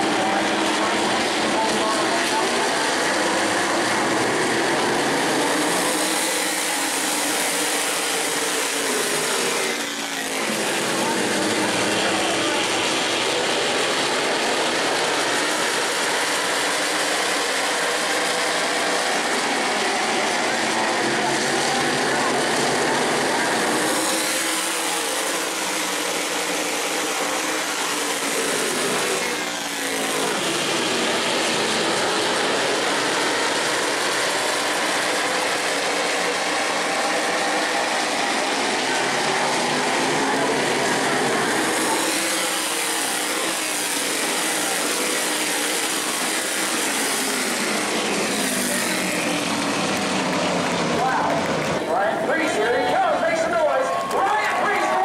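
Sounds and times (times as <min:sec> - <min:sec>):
race car passing close: 0:00.0 - 0:54.9
race car engines droning: 0:00.0 - 0:55.0.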